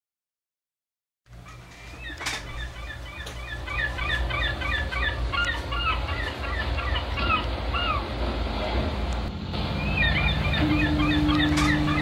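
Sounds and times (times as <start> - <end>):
birds chirping: 1.4 - 8.8, 9.5 - 12.0
steady low rumble: 3.6 - 12.0.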